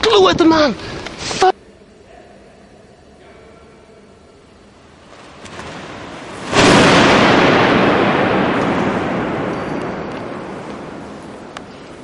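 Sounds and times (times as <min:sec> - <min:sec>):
parachute canopy snapping open: 0:05.1 - 0:07.2.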